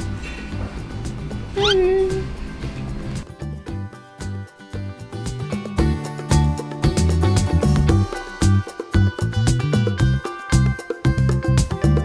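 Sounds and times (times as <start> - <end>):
background music: 0.0 - 12.0
cat meowing: 1.6 - 2.4.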